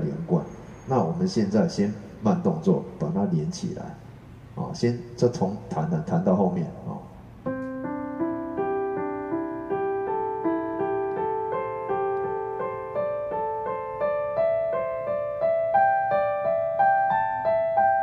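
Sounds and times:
digital piano single notes: 7.0s - 18.0s.

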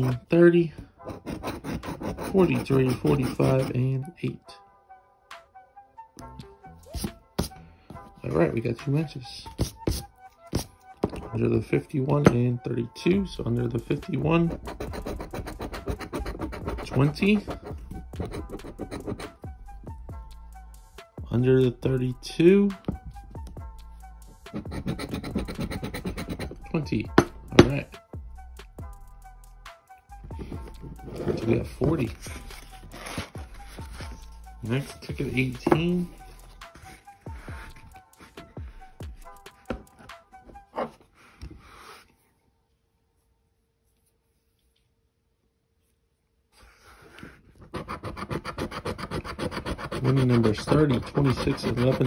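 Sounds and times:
coin scratching lottery ticket: 1.1s - 3.7s, 14.5s - 19.3s, 24.5s - 26.6s, 47.7s - 52.0s.

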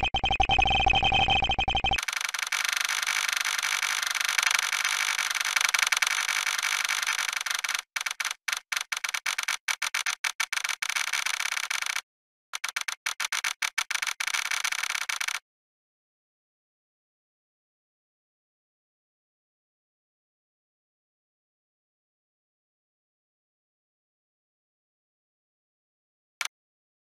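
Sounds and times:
harsh distorted digital audio: 0.0s - 9.3s.

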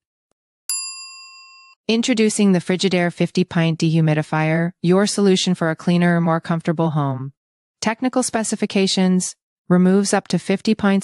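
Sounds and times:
bell-like ding: 0.7s - 1.8s.

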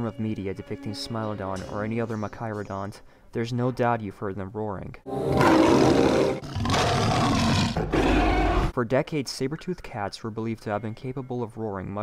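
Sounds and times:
big cat roaring: 5.3s - 8.7s.

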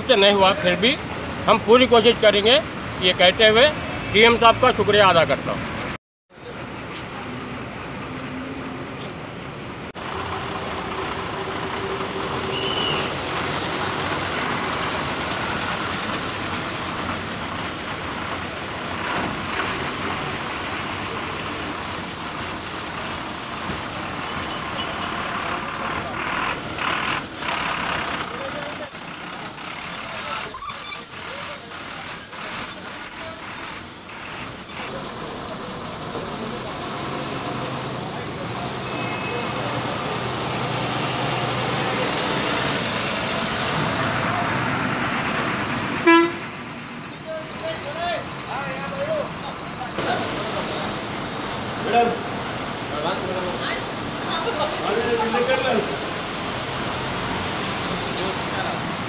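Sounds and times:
bus engines running: 0.0s - 59.0s
traffic noise: 0.0s - 59.0s
bus horn toots: 12.4s - 13.2s, 45.9s - 46.5s.

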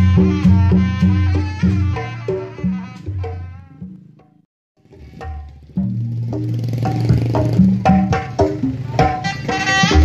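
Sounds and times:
hand drums struck in quick patterns: 0.0s - 10.0s.

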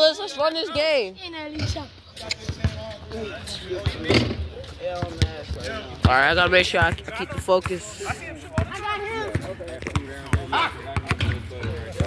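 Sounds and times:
players' voices: 0.0s - 12.0s.

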